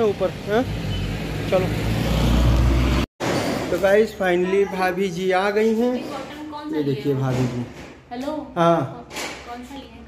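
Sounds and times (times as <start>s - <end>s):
road noise: 0.0s - 8.1s.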